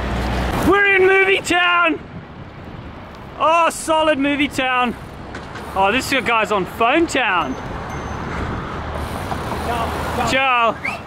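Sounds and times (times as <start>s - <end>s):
road traffic: 0.0s - 11.0s
wind over microphone: 2.0s - 6.4s, 7.5s - 9.7s.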